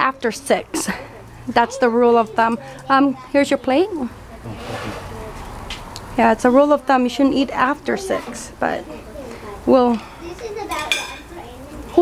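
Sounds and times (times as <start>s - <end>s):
metal tongs clinking: 10.7s - 11.3s.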